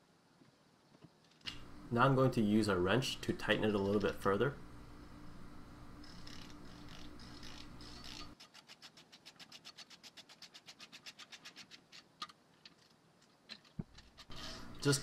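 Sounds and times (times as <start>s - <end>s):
low steady hum: 1.4s - 8.4s.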